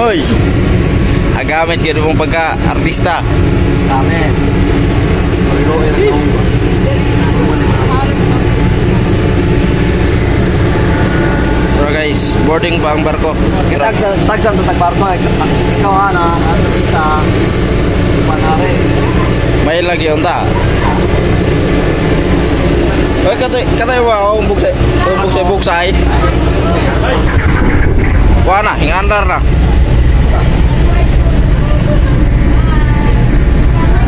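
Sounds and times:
ferry engines rumbling: 0.0 - 34.0
faint voices: 1.4 - 34.0.

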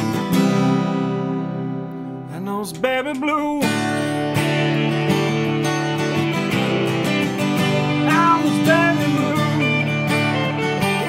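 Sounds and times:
acoustic guitar strumming chords: 0.0 - 11.0
electric guitar bending notes: 3.6 - 11.0.

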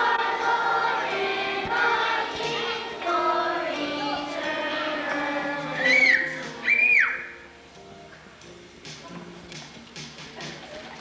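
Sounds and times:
children's choir singing: 0.0 - 6.9
high-pitched whistle-like tones: 5.8 - 7.4.

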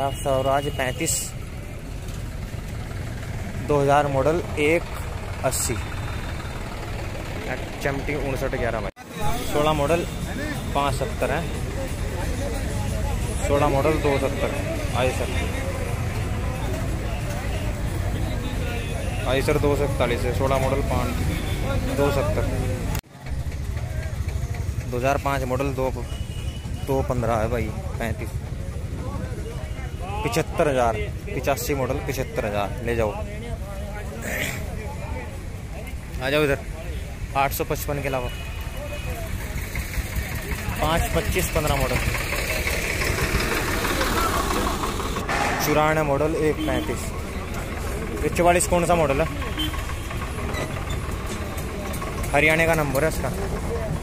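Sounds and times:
tractor engine idling: 0.1 - 54.0
man speaking: 45.3 - 47.2.

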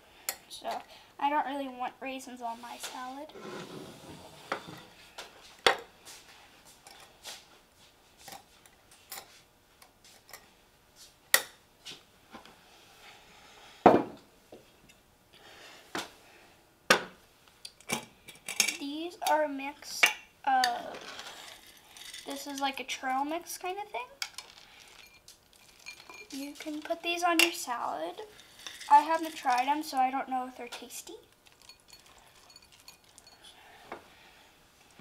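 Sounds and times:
metal spoon clinking against glass: 25.0 - 26.4, 31.6 - 33.5.

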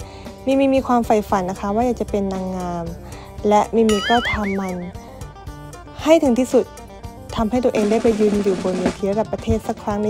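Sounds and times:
background music: 0.0 - 10.0
woman speaking: 0.5 - 5.0, 7.4 - 10.0.

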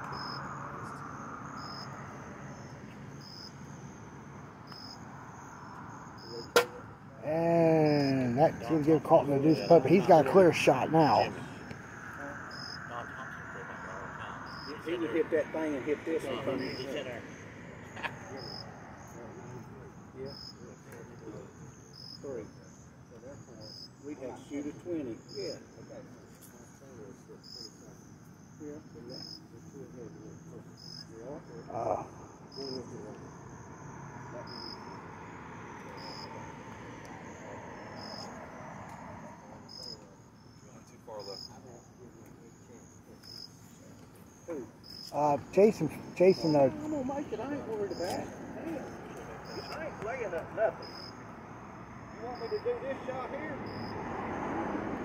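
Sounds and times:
crickets chirping: 0.0 - 55.0
putter striking golf ball: 6.5 - 6.8.

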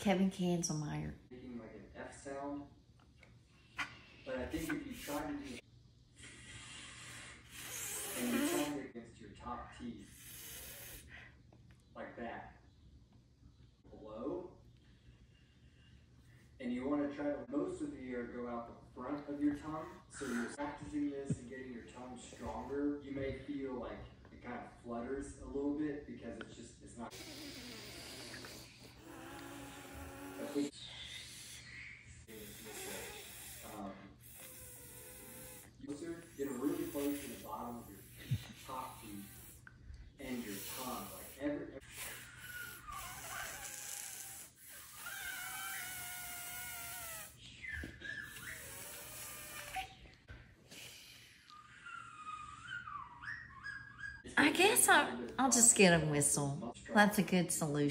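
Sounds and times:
person blowing air hiss: 6.3 - 8.8, 10.1 - 11.1, 27.1 - 30.7, 32.3 - 35.7, 40.3 - 47.4, 48.6 - 49.9
person blowing breathy air whistling: 6.3 - 8.8.

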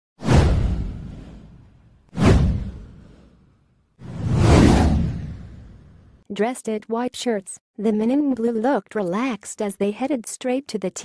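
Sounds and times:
whoosh sound effects: 0.2 - 6.2
deep rumble: 4.0 - 6.2.

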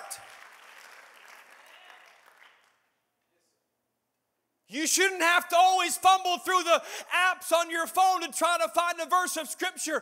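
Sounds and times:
quiet applause: 0.0 - 3.0.

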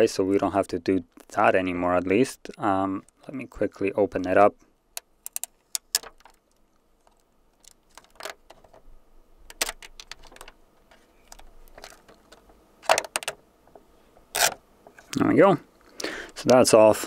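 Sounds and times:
plastic film crinkling: 5.3 - 8.8, 9.4 - 13.4.

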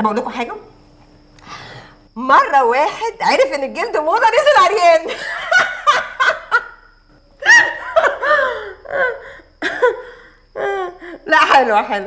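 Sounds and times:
woman laughing: 5.1 - 6.8, 7.4 - 11.2.

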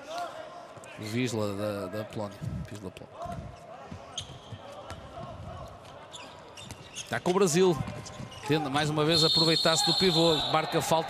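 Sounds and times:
players calling: 8.6 - 11.0.

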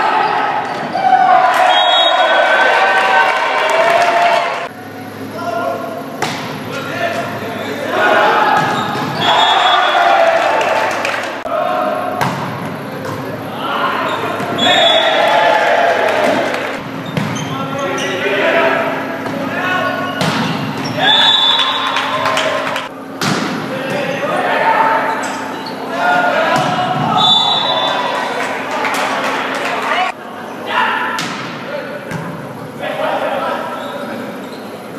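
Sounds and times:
players shouting: 0.0 - 23.0, 23.6 - 34.3.

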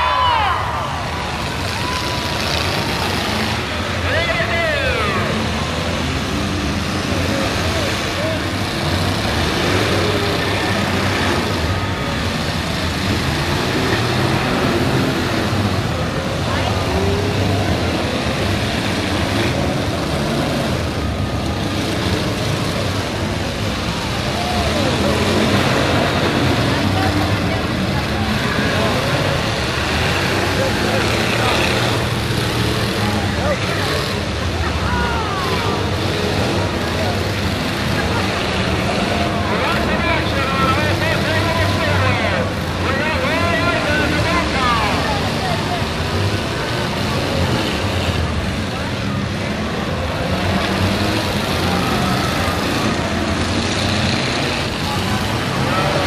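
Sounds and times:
car engines revving: 0.0 - 56.0
crowd voices: 0.0 - 56.0.

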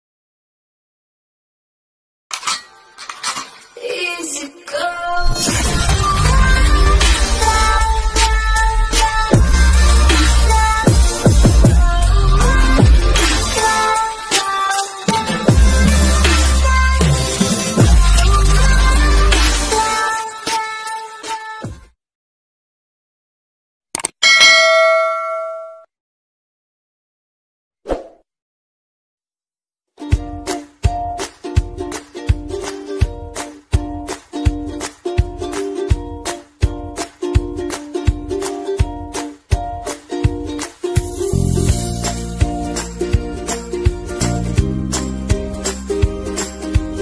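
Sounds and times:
metallic ringing hits: 24.2 - 25.8
bell ding: 24.2 - 25.9
pitched tone: 24.2 - 25.9.

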